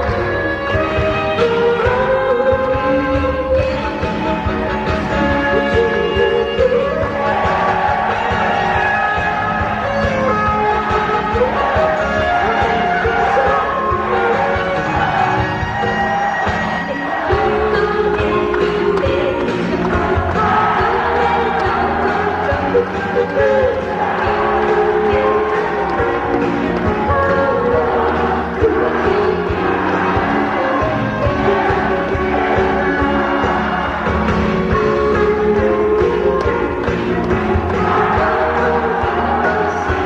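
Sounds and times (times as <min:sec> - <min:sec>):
live pop band: 0:00.0 - 0:40.0
woman singing: 0:05.5 - 0:07.2, 0:17.0 - 0:33.5, 0:34.8 - 0:40.0.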